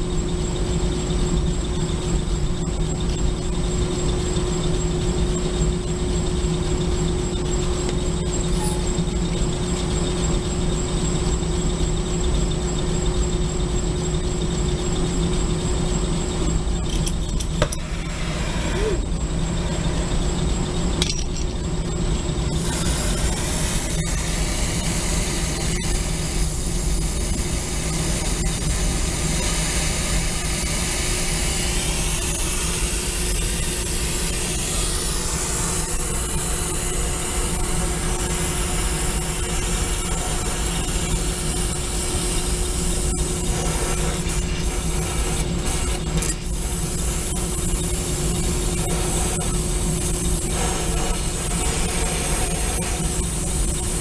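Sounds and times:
low mechanical drone: 0.0 - 54.0.

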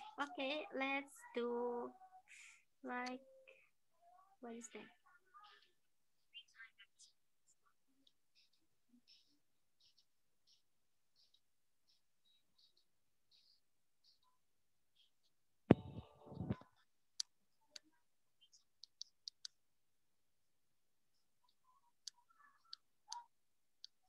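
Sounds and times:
microphone knock: 15.7 - 16.6
sharp mouse clicks: 18.8 - 19.6, 22.0 - 24.0.

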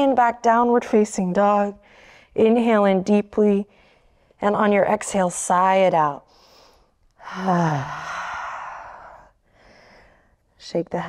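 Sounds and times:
woman sighing: 7.2 - 9.1.

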